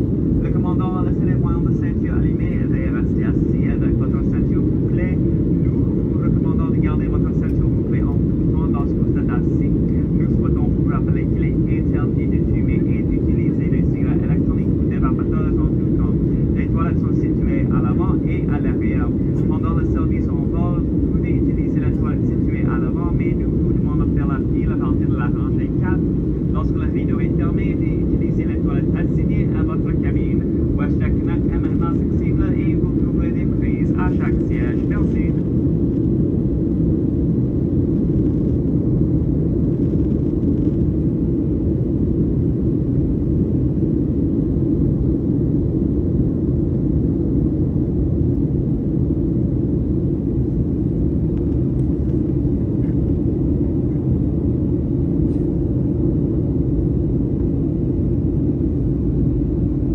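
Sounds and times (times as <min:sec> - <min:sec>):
airliner cabin engine rumble: 0:00.0 - 0:59.9.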